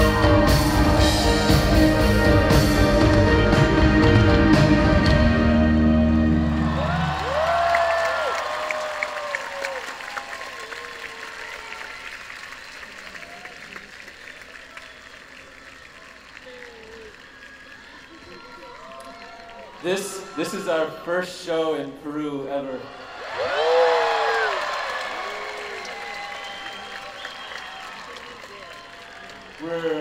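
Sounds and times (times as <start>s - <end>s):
crowd applauding: 0.0s - 5.3s, 6.1s - 21.2s, 23.0s - 30.0s
live band chords: 0.0s - 7.2s.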